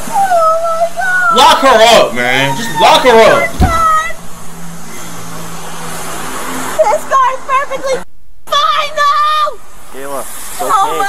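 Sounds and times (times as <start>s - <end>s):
street noise with low hum: 0.0s - 11.0s
woman wailing: 0.1s - 4.2s.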